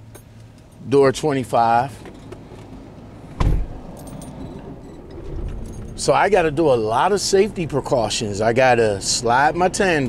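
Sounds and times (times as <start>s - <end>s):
heavy thump: 3.3s - 3.8s
truck engine idling: 3.3s - 10.0s.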